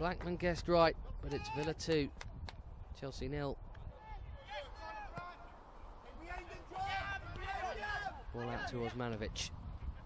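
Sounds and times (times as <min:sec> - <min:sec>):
footballers calling out: 0:03.9 - 0:09.0.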